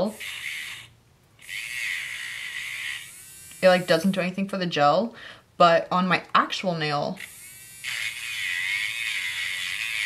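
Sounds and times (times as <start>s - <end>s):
nail drill buzzing: 0.0s - 4.3s, 7.2s - 10.0s.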